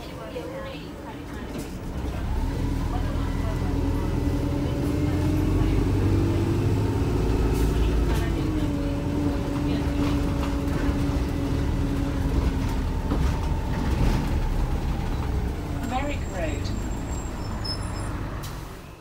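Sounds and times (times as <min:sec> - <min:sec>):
bus drivetrain rumble: 0:00.0 - 0:19.0
bus whine: 0:00.0 - 0:19.0.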